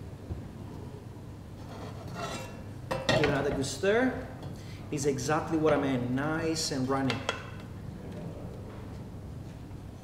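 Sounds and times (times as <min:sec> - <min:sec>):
low kitchen hum: 0:00.0 - 0:10.0.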